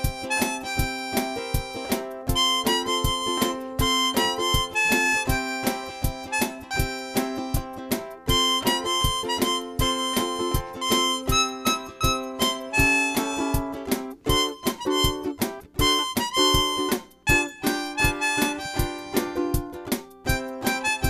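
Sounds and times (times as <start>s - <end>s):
blues harmonica solo: 0.0s - 21.0s
electric ukulele strumming: 0.0s - 21.0s
steady drum beat: 0.0s - 21.0s.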